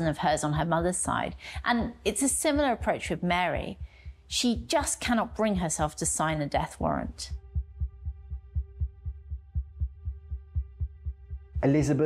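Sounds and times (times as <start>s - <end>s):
heartbeat-style low thumping: 0.0s - 11.9s.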